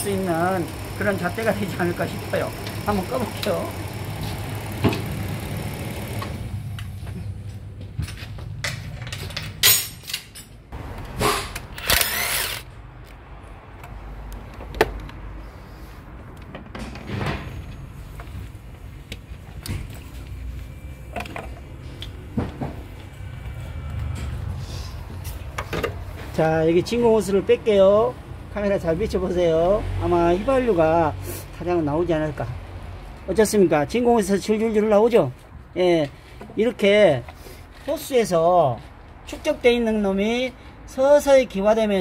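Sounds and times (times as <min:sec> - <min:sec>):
car engine idling: 0:00.0 - 0:07.1.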